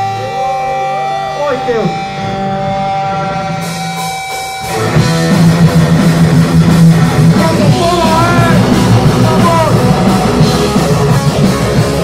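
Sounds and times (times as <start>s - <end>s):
electric guitar bending notes: 0.0s - 12.0s
punk band playing loud: 0.0s - 12.0s.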